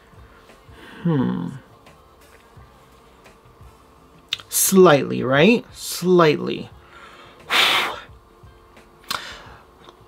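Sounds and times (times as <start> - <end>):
man exhaling through lips: 7.5 - 8.1.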